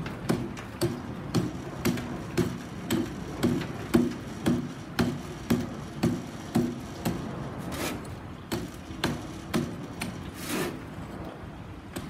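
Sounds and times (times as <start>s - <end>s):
hammer striking plaster: 0.2s - 7.2s
scraping stroke: 7.6s - 8.1s, 10.3s - 10.9s.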